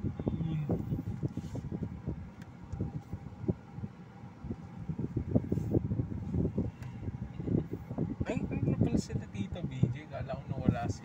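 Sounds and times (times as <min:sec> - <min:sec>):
dull low thumps in car cabin: 0:00.0 - 0:11.0.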